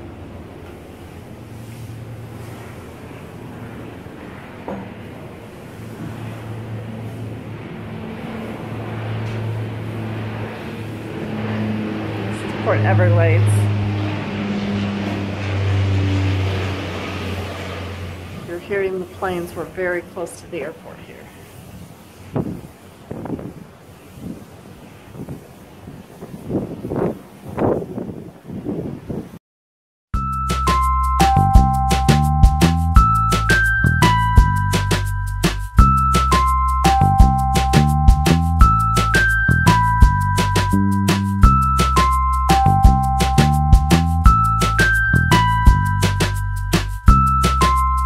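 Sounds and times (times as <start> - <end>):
jet aircraft rumble: 0.0 - 29.2, 30.4 - 48.0
wind buffeting microphone: 1.2 - 29.4.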